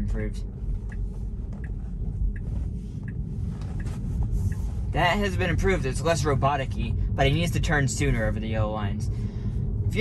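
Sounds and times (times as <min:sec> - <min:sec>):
turn signal ticking: 0:00.0 - 0:08.5.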